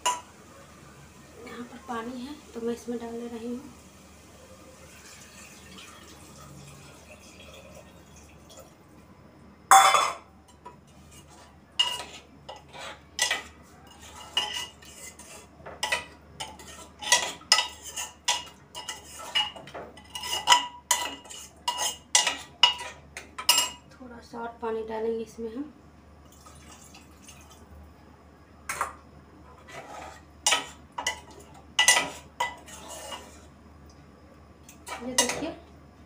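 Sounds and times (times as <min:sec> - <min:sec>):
water pouring: 0:04.7 - 0:08.8, 0:26.3 - 0:27.6.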